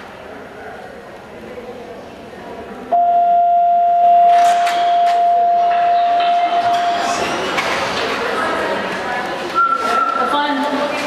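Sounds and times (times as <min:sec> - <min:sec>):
electronic bell high tone: 0:03.0 - 0:07.1.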